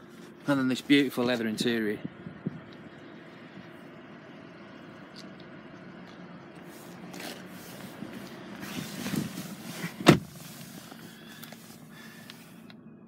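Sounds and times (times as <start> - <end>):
rustling and handling noise: 6.6 - 12.6.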